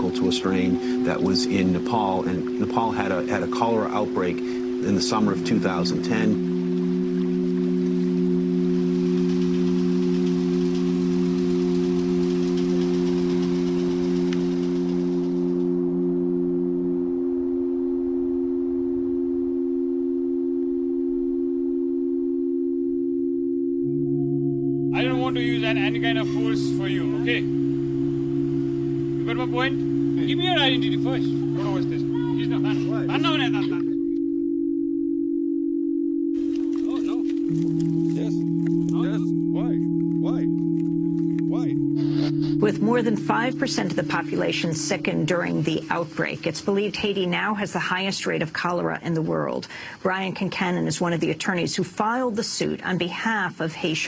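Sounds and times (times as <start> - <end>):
deeper low tone: 0.0 - 49.4
low synth drone: 0.0 - 53.9.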